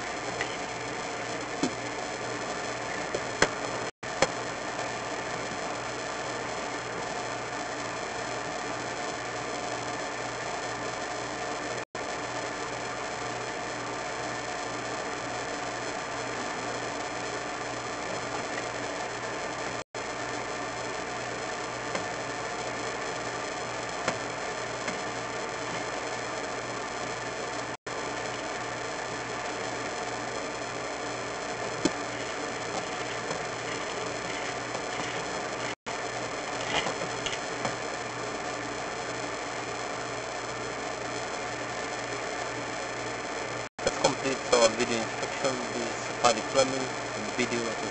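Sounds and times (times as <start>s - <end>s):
electrical hiss and hum: 0.0s - 47.9s.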